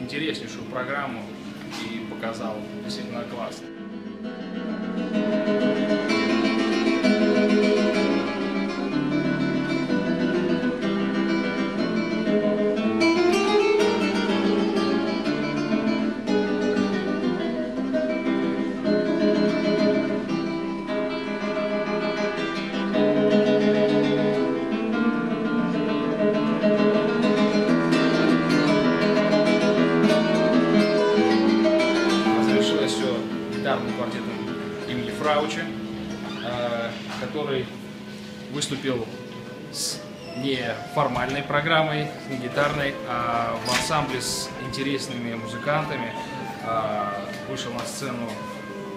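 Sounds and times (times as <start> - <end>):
classical guitar playing: 0.0 - 48.9.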